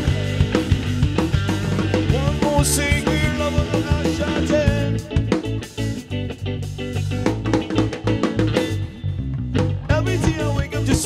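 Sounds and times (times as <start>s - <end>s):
bass line: 0.0s - 11.0s
drum kit beat: 0.0s - 11.0s
electric guitar chords: 0.0s - 11.0s
live band playing: 0.0s - 11.0s.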